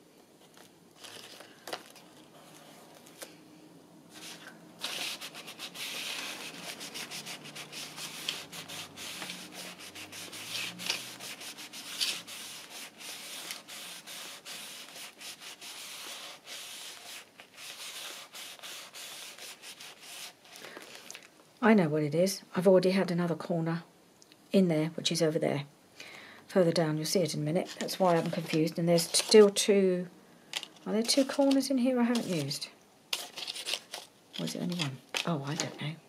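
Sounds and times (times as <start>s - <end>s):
tissue rubbing against paper: 4.1s - 20.6s.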